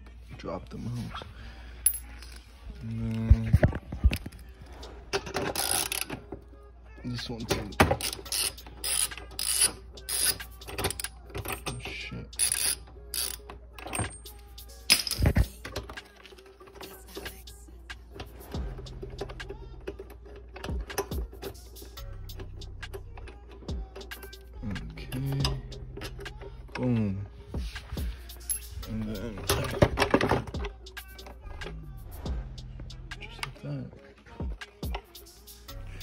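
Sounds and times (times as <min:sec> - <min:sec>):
socket ratchet clicking: 0:05.2 - 0:06.2, 0:07.6 - 0:16.0, 0:19.0 - 0:24.6, 0:25.2 - 0:26.7.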